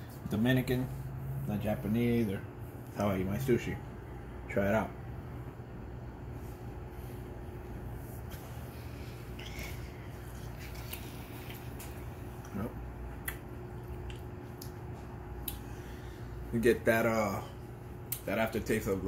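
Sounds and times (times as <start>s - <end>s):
room hum: 0.0s - 19.0s
man chewing food: 8.3s - 16.0s.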